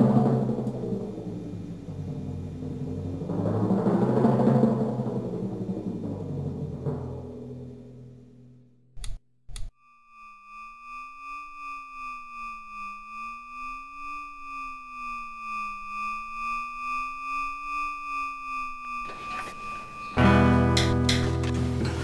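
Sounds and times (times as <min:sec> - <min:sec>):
synthesized electronic hum: 0:07.2 - 0:22.0
loud burst of music: 0:19.8 - 0:22.0.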